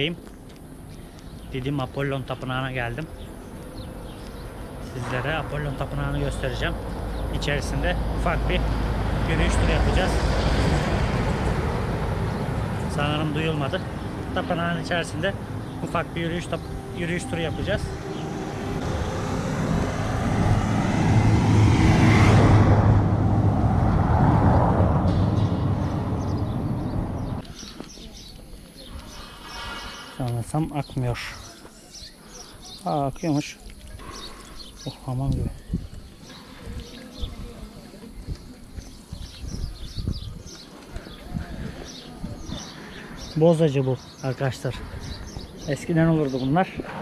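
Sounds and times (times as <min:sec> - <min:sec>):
small birds chirping: 0:00.0 - 0:18.6, 0:25.1 - 0:47.0
low outdoor rumble: 0:00.7 - 0:27.6
vehicle passing by: 0:01.4 - 0:27.7, 0:42.6 - 0:47.0.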